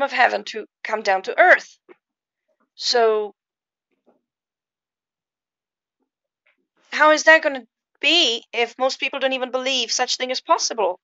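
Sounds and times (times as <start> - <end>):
woman talking: 0.0 - 1.8, 2.8 - 3.3, 7.0 - 11.0.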